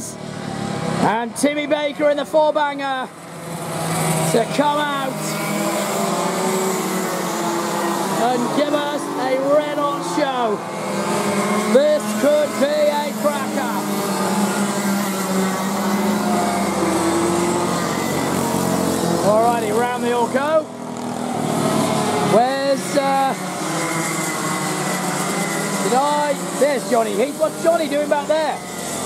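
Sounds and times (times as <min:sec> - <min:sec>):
kart engines droning: 0:00.0 - 0:29.0
people talking: 0:01.0 - 0:03.1, 0:04.3 - 0:05.4, 0:08.1 - 0:10.6, 0:11.7 - 0:14.0, 0:19.2 - 0:20.7, 0:22.3 - 0:23.4, 0:25.8 - 0:28.6.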